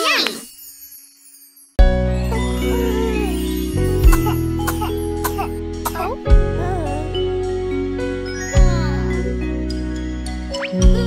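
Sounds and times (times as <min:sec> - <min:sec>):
chiming bell-like notes: 0:00.1 - 0:10.9
held bass notes: 0:02.1 - 0:11.0.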